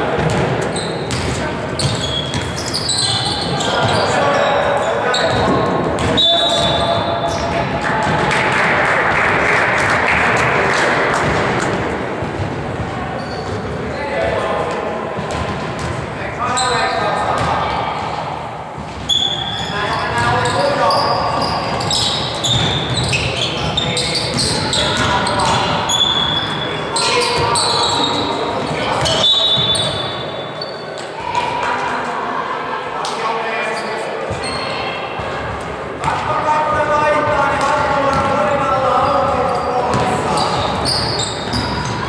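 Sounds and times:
sneakers squeaking: 0.0s - 9.2s, 11.1s - 31.8s, 33.6s - 42.0s
players' voices echoing: 0.0s - 42.0s
basketball bouncing on hardwood: 37.6s - 38.3s, 39.9s - 40.2s.

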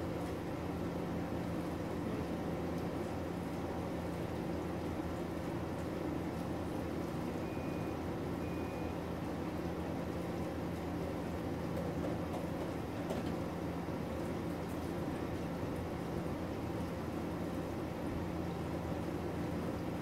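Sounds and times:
appliance hiss and hum: 0.0s - 20.0s.

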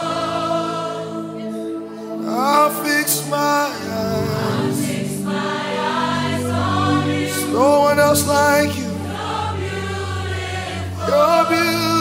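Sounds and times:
choir singing sustained voices: 0.0s - 12.0s.

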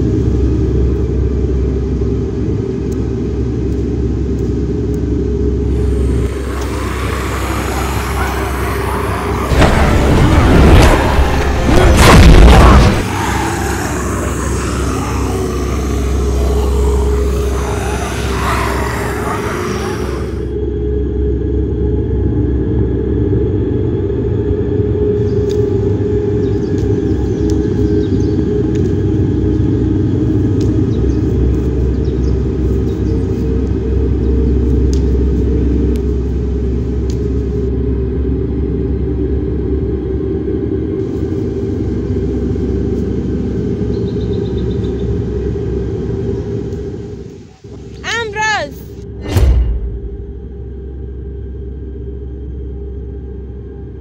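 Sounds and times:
low rumbling drone: 0.0s - 48.0s, 48.8s - 54.0s
bright noisy layer: 5.6s - 20.5s.

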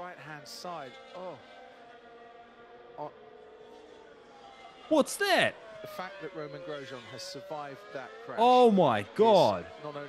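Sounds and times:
faint racing car engines droning: 0.0s - 10.0s.

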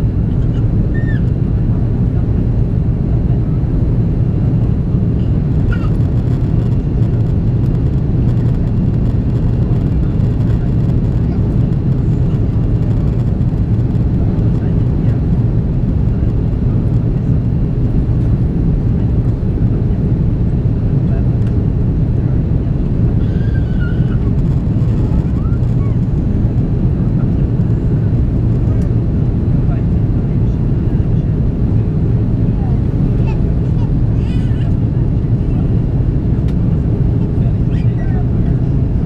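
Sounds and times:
airplane cabin drone: 0.0s - 39.0s.

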